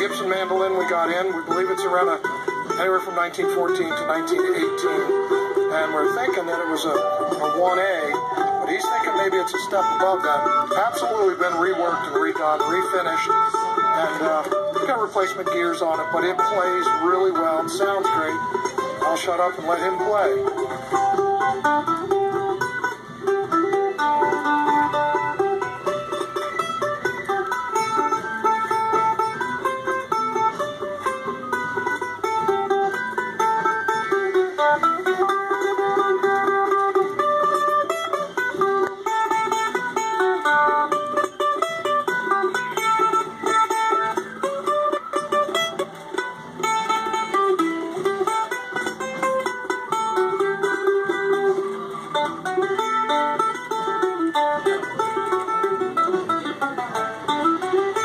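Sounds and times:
acoustic mandolin picked melody: 0:00.0 - 0:58.0.

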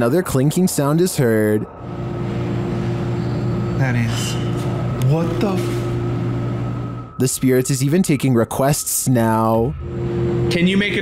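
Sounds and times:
steady low room hum: 0:00.4 - 0:11.0
man speaking: 0:03.8 - 0:05.8, 0:07.2 - 0:09.8, 0:10.5 - 0:11.0.

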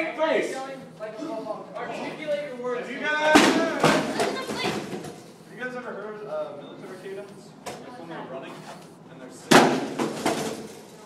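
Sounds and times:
metal chair crashing on floor: 0:09.5 - 0:10.8.

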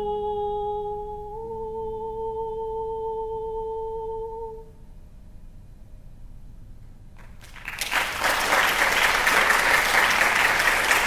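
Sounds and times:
soprano singing long note: 0:00.0 - 0:04.8.

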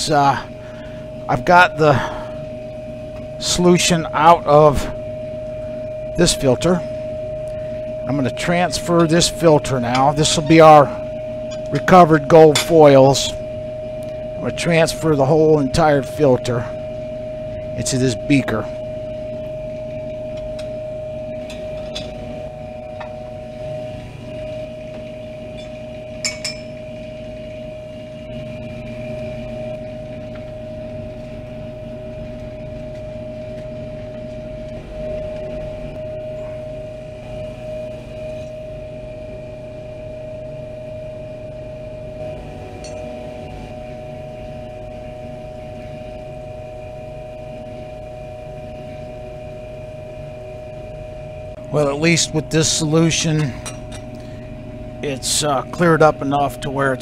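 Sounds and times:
machine hum: 0:00.0 - 0:57.0
glassware clinking: 0:25.6 - 0:26.8, 0:42.8 - 0:43.1, 0:53.4 - 0:54.2.

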